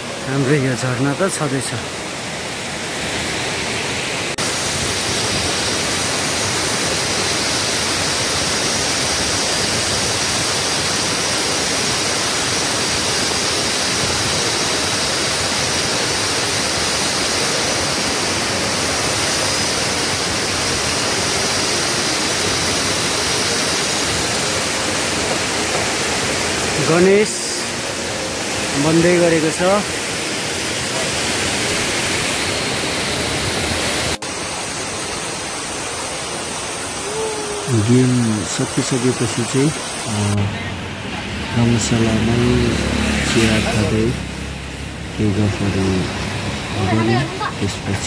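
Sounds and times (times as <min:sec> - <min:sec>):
waterfall rushing: 0:00.0 - 0:48.0.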